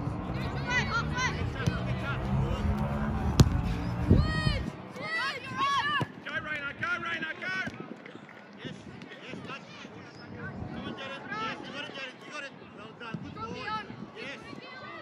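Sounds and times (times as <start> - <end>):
players and spectators shouting: 0.4 - 6.2
wind rumble on microphone: 1.4 - 7.0, 8.6 - 11.6
football kick thud: 3.3 - 3.7.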